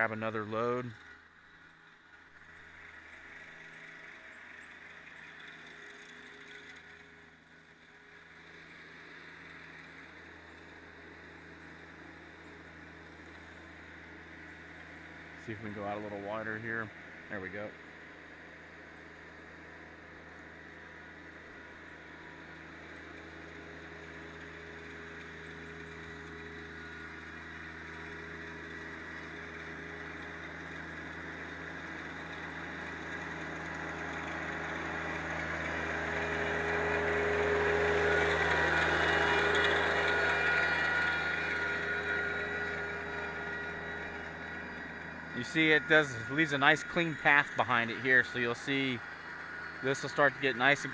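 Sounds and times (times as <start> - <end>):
tractor engine running: 0.0 - 50.9.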